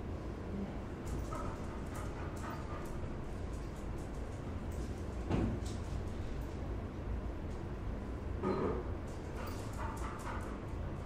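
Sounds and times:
dog claws on tiled floor: 0:01.0 - 0:06.4, 0:09.1 - 0:10.8.

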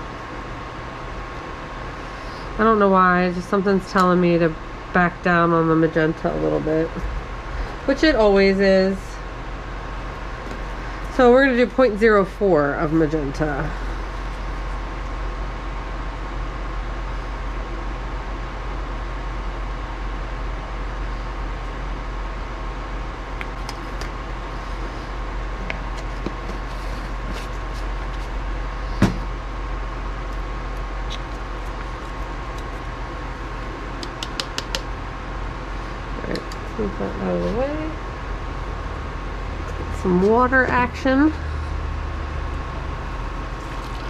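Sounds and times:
fan hum: 0:00.0 - 0:44.0.

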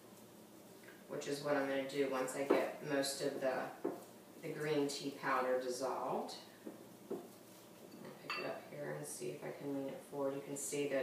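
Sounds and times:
bowl clink: 0:07.9 - 0:08.6.

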